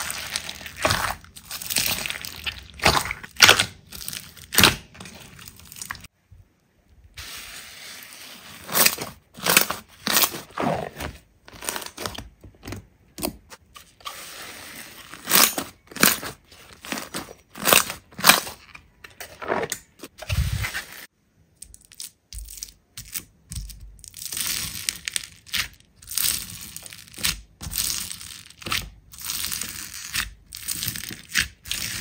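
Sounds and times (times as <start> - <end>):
crunchy slime crackling: 0.0 - 6.1, 14.8 - 18.6, 22.4 - 32.0.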